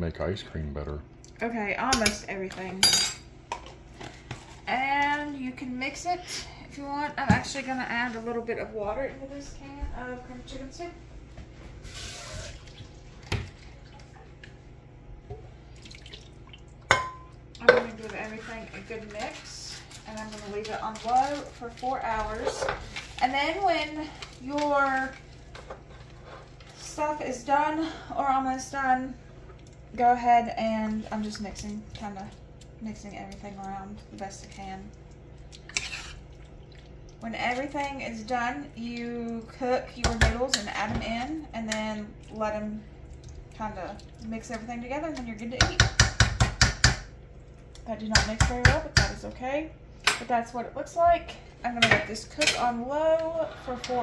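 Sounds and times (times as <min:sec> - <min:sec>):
spoon stirring thick mix: 0:17.8 - 0:26.8, 0:31.1 - 0:38.0
wet squelch: 0:31.2 - 0:37.9.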